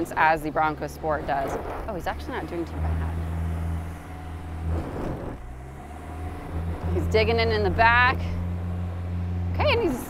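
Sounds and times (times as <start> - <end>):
car engine working hard: 0.0 - 10.0.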